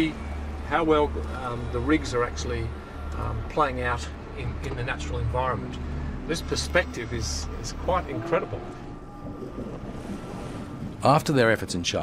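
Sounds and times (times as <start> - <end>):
waves washing: 0.0 - 12.0.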